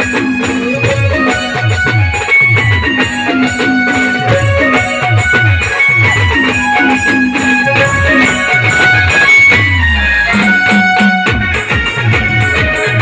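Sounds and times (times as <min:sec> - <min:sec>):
live band dance music: 0:00.0 - 0:13.0
plucked-string melody: 0:00.0 - 0:13.0.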